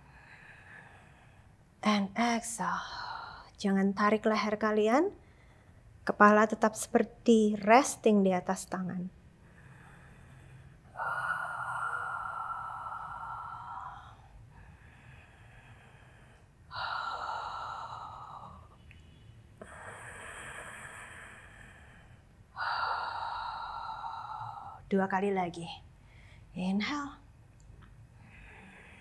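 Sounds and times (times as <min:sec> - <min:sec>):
woman breathing deeply: 0:00.0 - 0:01.8, 0:09.2 - 0:24.9, 0:25.9 - 0:26.5, 0:28.0 - 0:29.0.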